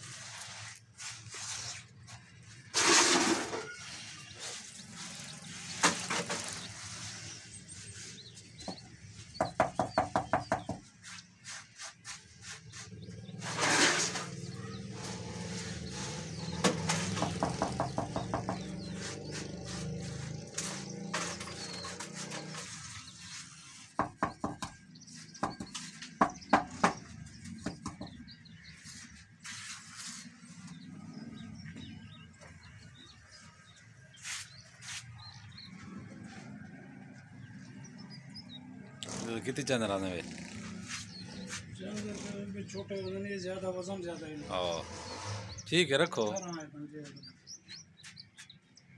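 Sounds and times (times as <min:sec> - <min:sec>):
rushing scrape: 0:00.0 - 0:08.4, 0:11.0 - 0:24.0, 0:28.7 - 0:31.3, 0:44.4 - 0:45.7
small birds chirping: 0:03.5 - 0:48.9.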